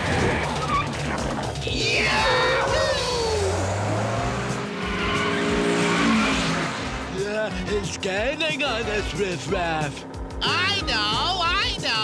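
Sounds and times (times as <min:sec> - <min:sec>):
tyres squealing: 0:00.0 - 0:09.4
cartoon racing car engines: 0:00.0 - 0:12.0.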